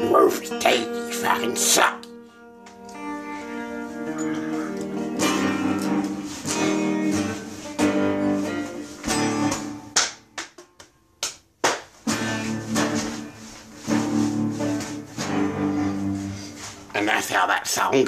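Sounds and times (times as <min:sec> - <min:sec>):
electric guitar strumming chords: 0:00.0 - 0:10.9, 0:12.0 - 0:17.1.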